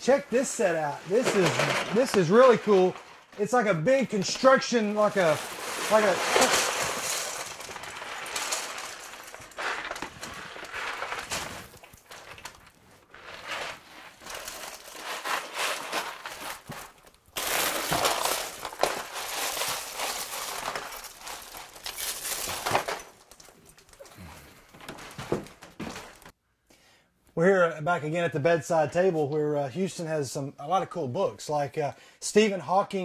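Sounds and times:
plastic pieces clattering: 1.0s - 3.5s, 4.2s - 26.3s.

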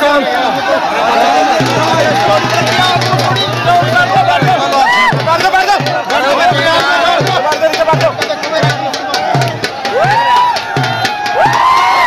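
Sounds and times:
crowd cheering: 0.0s - 12.0s
dhol drum beating: 1.4s - 12.0s
high whoops: 4.8s - 5.1s, 9.9s - 12.0s.

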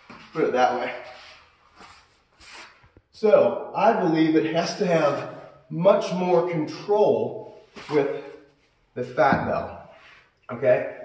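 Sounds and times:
faint rubbing on a mat: 1.1s - 2.9s.

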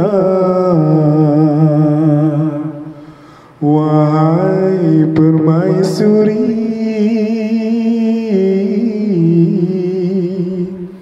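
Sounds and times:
man singing long note with echo: 0.0s - 11.0s.

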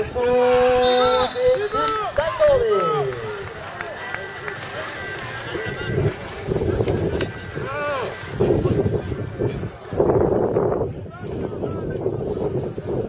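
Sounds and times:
spectators' voices: 0.0s - 13.0s
short calls: 0.8s - 5.9s
wind buffeting microphone: 5.3s - 13.0s.

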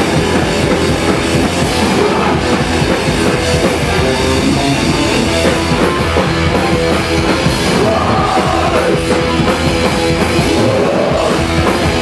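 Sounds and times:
distorted electric guitars: 0.0s - 12.0s
pounding drum kit: 0.0s - 12.0s.

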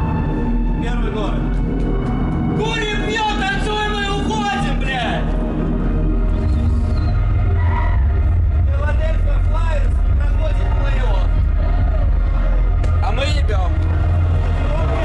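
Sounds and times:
muffled bass-heavy music: 0.0s - 15.0s
people talking: 8.7s - 11.4s, 12.9s - 13.8s.

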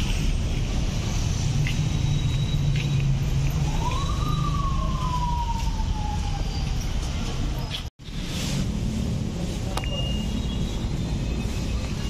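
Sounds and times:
street traffic engine hum: 0.0s - 12.0s
siren wail: 3.6s - 6.8s.

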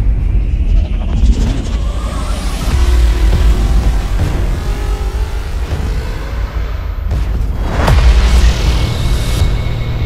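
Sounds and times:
heavy bass rumble: 0.0s - 10.0s
tv theme music: 0.0s - 10.0s
rising whoosh effect: 0.7s - 9.4s.

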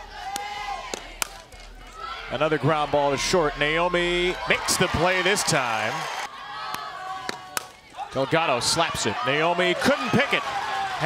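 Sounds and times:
bat cracking on ball: 6.7s - 7.8s.

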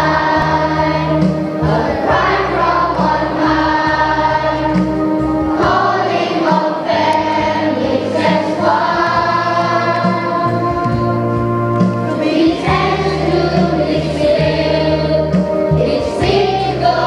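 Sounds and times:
children's choir singing: 0.0s - 17.0s.

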